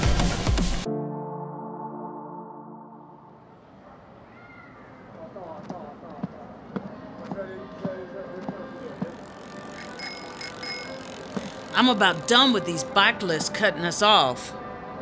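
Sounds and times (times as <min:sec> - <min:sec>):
bicycle bell ringing: 0:09.2 - 0:11.9.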